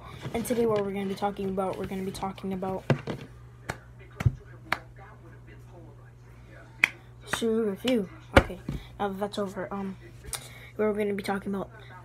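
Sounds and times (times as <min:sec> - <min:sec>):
sharp hand claps: 0:06.8 - 0:08.0.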